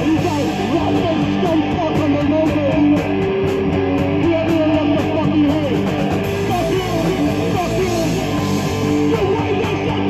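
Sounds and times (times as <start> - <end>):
bass guitar: 0.0 - 10.0
drum and cymbal hits: 0.0 - 10.0
electric guitar: 0.0 - 10.0.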